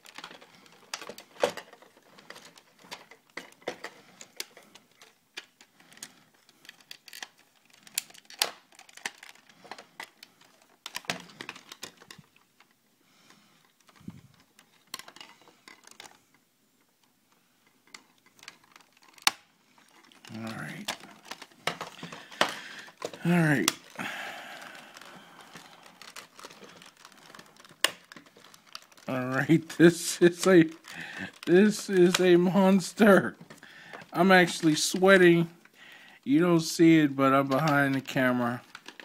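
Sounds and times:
plastic toy parts clicking: 0.0 - 12.7, 13.8 - 16.2, 17.8 - 24.0, 24.6 - 29.2, 37.5 - 39.0.

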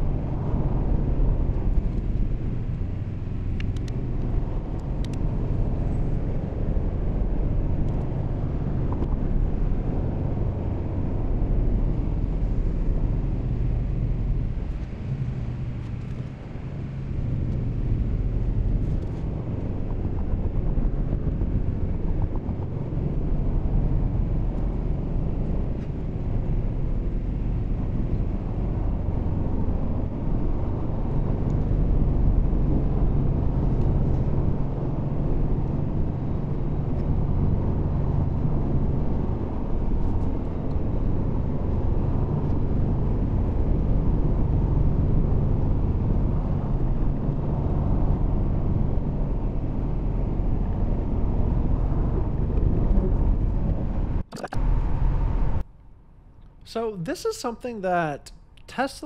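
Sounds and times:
tyre and road noise in car cabin: 0.0 - 55.8.

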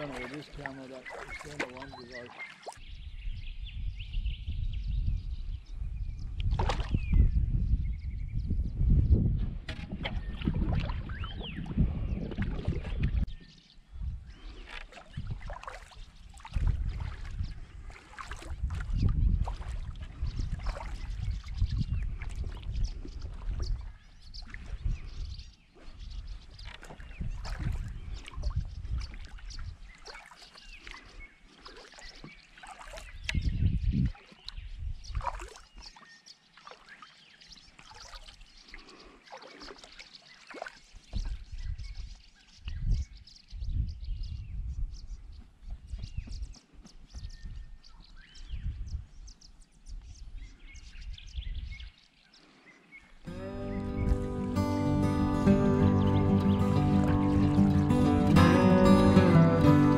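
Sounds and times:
paddle strokes dipping and dripping: 0.0 - 2.8, 9.7 - 13.7, 14.3 - 42.6
birds calling: 0.0 - 7.4, 9.1 - 43.6, 45.0 - 59.9
wind buffeting microphone: 2.8 - 29.9, 33.0 - 35.5, 41.1 - 52.0, 53.3 - 59.3
music: 53.3 - 59.9.

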